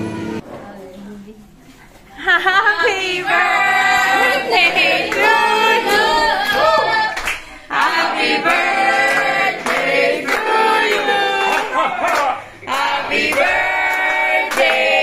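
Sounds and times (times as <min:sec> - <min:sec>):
group singing unaccompanied: 0:02.7 - 0:15.0
people clapping along: 0:03.2 - 0:15.0.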